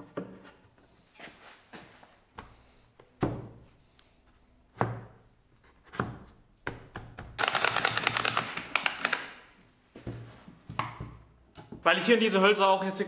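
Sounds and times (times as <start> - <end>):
rapid clattering clicks: 7.4 - 9.2.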